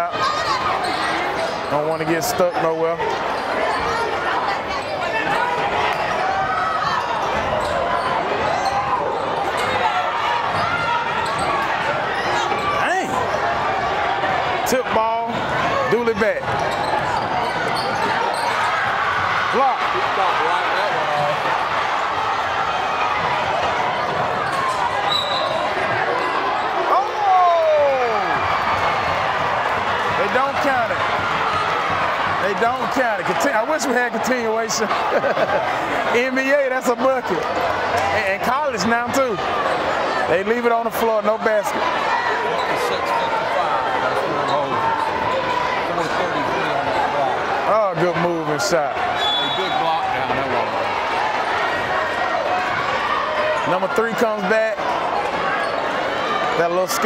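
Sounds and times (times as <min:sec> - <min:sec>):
crowd voices and shouts: 0:00.0 - 0:57.0.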